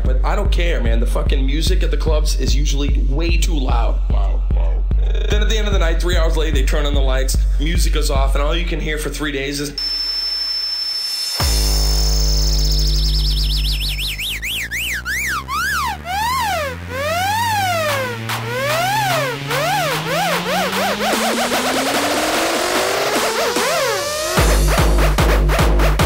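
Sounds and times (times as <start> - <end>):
deep gliding bass tone: 0.0 - 8.8, 11.4 - 23.2
high ringing tone: 9.8 - 20.1
siren-like synth warbling: 9.8 - 24.4.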